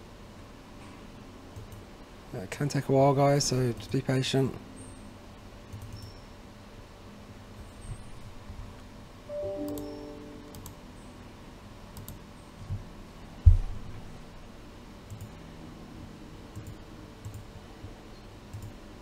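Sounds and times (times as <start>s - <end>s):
computer mouse clicks: 1.6s - 1.8s, 5.7s - 6.2s, 12.0s - 12.2s, 15.1s - 15.4s, 16.5s - 17.4s, 18.5s - 18.8s
chime-like tones: 9.3s - 10.5s.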